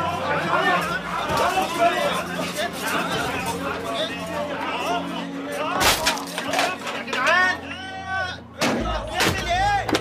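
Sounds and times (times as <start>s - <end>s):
loud yelling voices: 0.0s - 10.0s.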